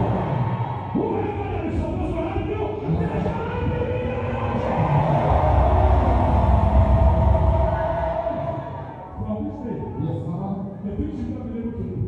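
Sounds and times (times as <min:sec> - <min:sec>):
congregation shouting and praying: 0:00.0 - 0:11.6.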